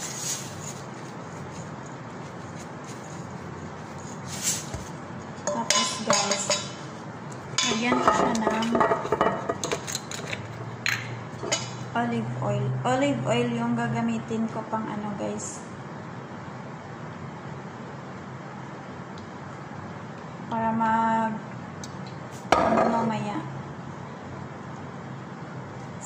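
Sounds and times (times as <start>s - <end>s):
utensils clinking on metal bowl: 5.4s - 6.8s, 7.6s - 11.8s
woman's voice: 5.5s - 6.8s, 7.6s - 8.8s, 11.9s - 15.7s, 20.5s - 21.5s, 22.7s - 23.5s.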